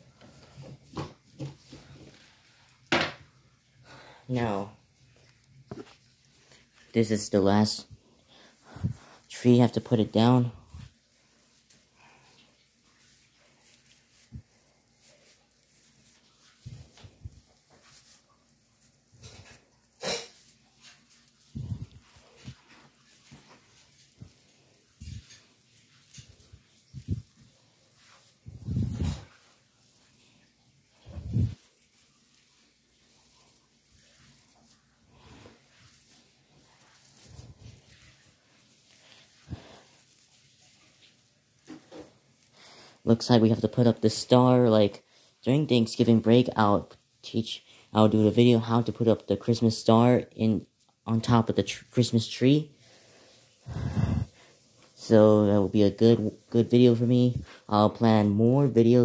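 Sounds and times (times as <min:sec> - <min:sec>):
plastic needles rustling and crackling: 0:00.1 - 0:59.0.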